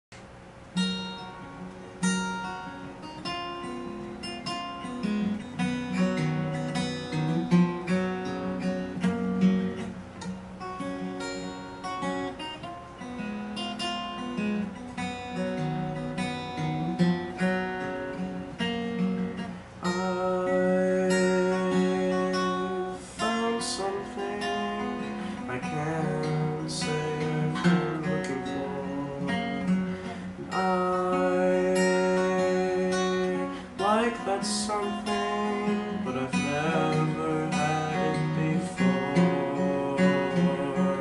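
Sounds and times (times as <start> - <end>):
solo acoustic guitar: 0.2 - 41.0.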